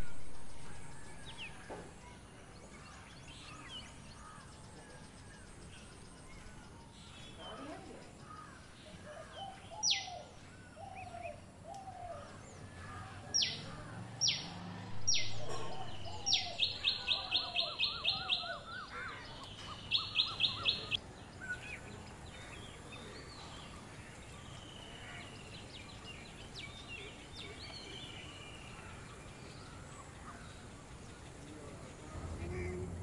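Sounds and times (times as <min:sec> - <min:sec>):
low down-slurred bird calls: 0:02.8 - 0:33.0
birds whistling sharp notes: 0:09.4 - 0:12.7, 0:13.3 - 0:21.8.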